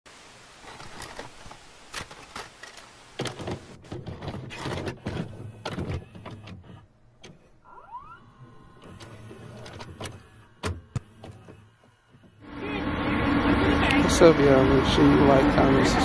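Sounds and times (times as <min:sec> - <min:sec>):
steady background noise: 0:00.1 - 0:16.0
tape mechanism whirring and clicking: 0:00.6 - 0:12.6
short rising whine: 0:07.6 - 0:16.0.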